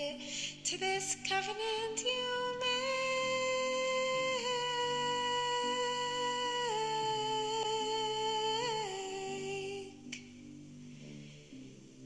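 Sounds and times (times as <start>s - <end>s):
soft sustained accompaniment chords: 0.0s - 12.0s.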